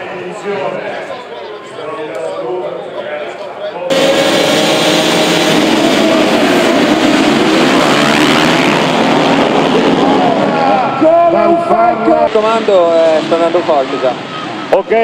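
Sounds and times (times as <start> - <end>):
racing motorcycles revving and accelerating: 3.9 - 14.7.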